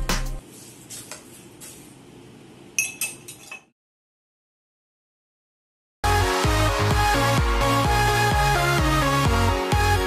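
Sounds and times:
metal spoon clinking against glass: 0:02.8 - 0:03.7.

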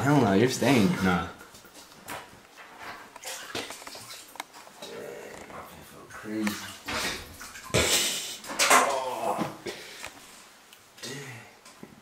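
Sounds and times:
water sloshing in a bathtub: 0:00.0 - 0:10.4.

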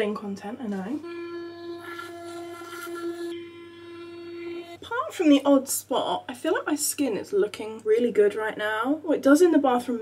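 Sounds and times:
electric toothbrush buzzing: 0:00.9 - 0:05.4.

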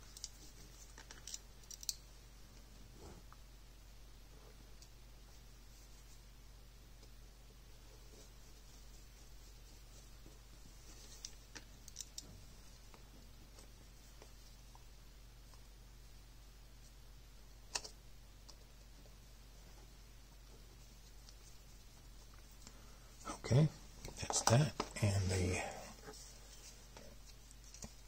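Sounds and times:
faint low hum: 0:00.0 - 0:28.0.

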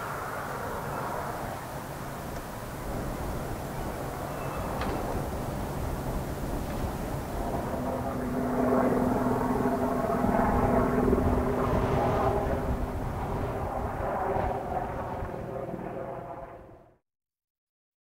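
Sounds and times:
engine drone: 0:00.0 - 0:16.8.

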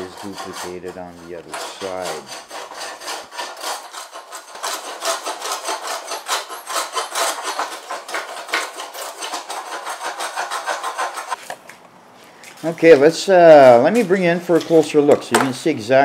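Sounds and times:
block plane shaving wood: 0:00.0 - 0:11.4.

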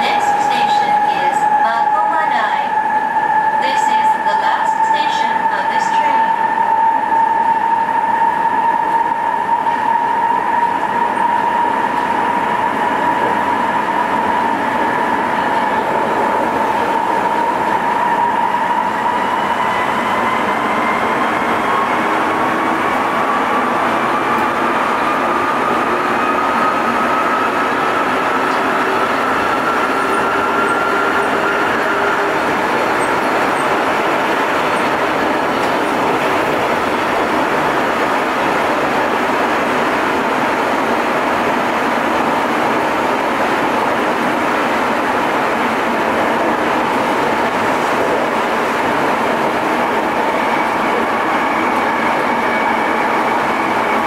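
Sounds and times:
subway car running whine: 0:00.0 - 0:54.0.

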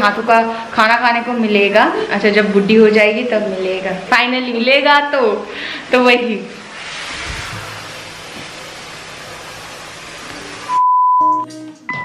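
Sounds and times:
static hiss: 0:05.5 - 0:10.8.

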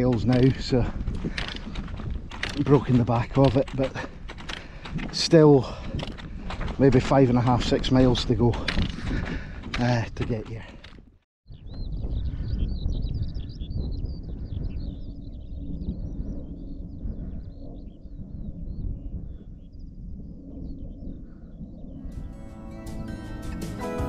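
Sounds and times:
wind rumbling on microphone: 0:00.0 - 0:22.3
plucked guitar music: 0:22.1 - 0:24.0.

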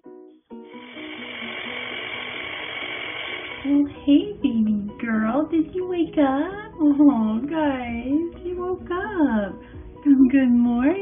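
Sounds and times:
electric blender running: 0:00.6 - 0:04.0.

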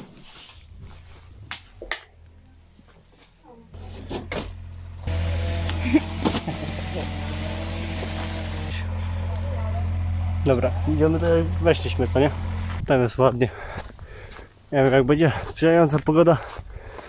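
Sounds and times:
low engine hum: 0:03.6 - 0:13.8.

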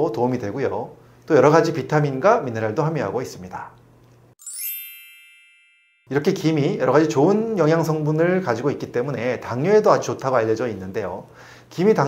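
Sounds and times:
bright chime ding: 0:04.4 - 0:06.2.

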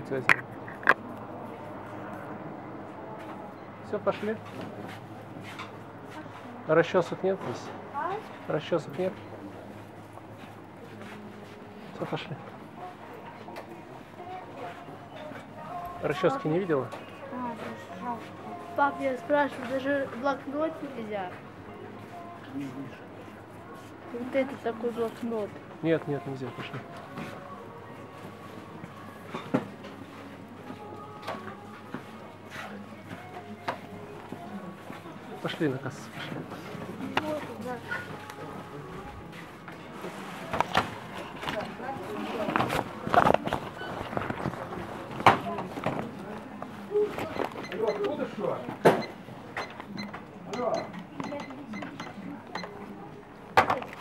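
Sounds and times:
faint voices: 0:09.1 - 0:54.0.

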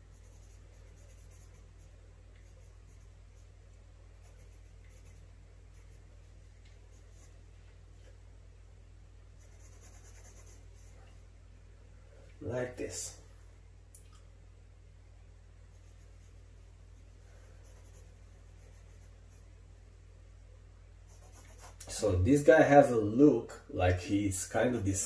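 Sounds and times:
pencil scratching on paper: 0:00.0 - 0:03.6, 0:04.2 - 0:06.0, 0:06.9 - 0:07.3, 0:09.4 - 0:10.9, 0:15.7 - 0:16.4, 0:17.0 - 0:19.4, 0:21.1 - 0:21.8
low steady hum: 0:00.0 - 0:25.0.

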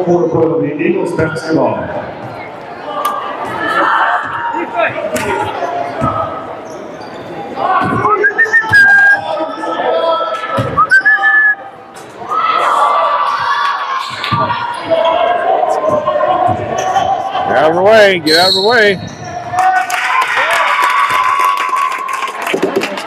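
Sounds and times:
spectators' voices: 0:00.0 - 0:23.0
sneaker squeaks: 0:03.4 - 0:09.4, 0:18.2 - 0:19.5.

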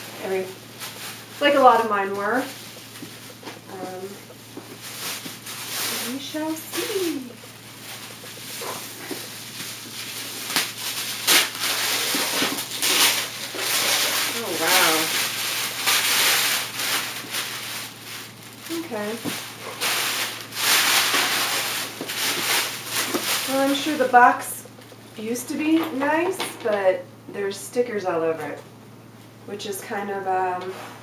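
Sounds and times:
cardboard packaging rustling: 0:00.0 - 0:25.2.

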